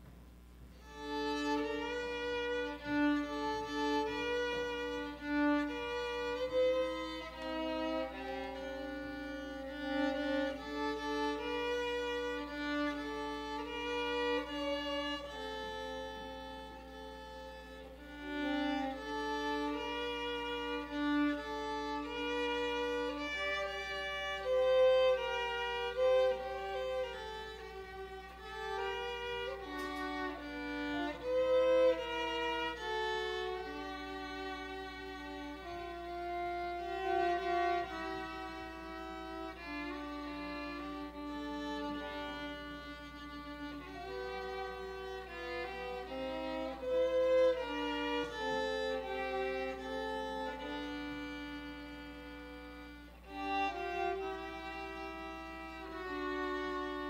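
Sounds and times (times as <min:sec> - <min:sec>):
violin duet: 0:00.0 - 0:57.0.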